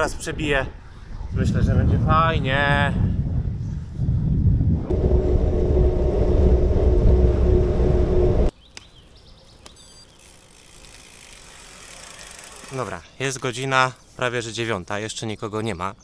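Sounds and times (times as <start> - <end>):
wind buffeting microphone: 0.0 - 8.5
steady hum: 4.5 - 8.5.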